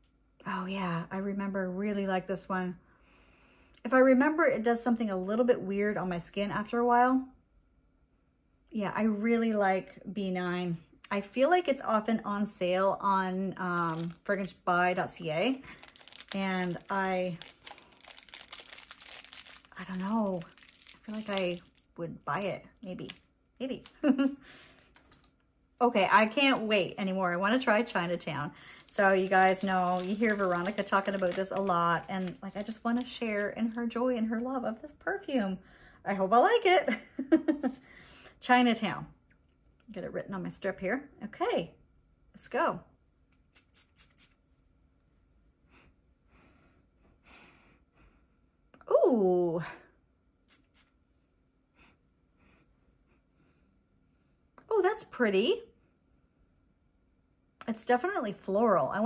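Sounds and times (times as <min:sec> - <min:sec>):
plastic wrapper crinkling: 0:13.6 - 0:25.4, 0:26.0 - 0:33.9
person speaking: 0:19.0 - 0:25.2.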